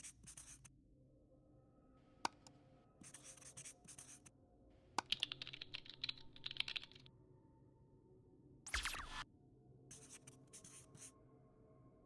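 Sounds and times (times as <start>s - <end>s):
marker scratching on surface: 0.0s - 0.7s, 3.0s - 4.3s, 9.9s - 11.1s.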